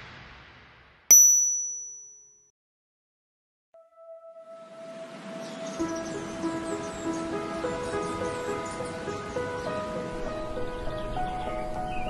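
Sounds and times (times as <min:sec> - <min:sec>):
bright chime ding: 0:01.1 - 0:02.4.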